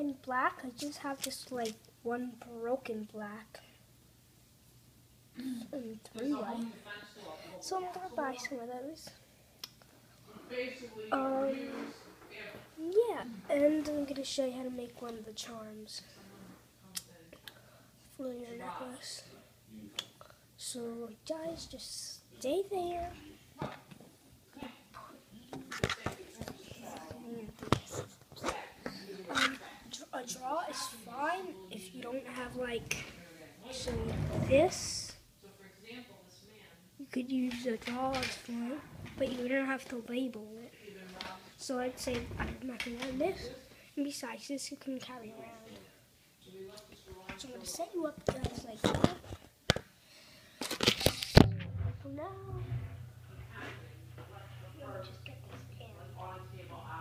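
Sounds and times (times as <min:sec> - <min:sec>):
low hum: 0:51.4 - 0:57.0.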